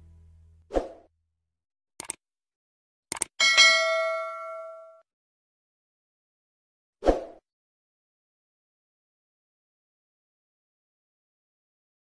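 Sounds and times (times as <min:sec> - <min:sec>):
bright bell chime: 0:03.4 - 0:05.0.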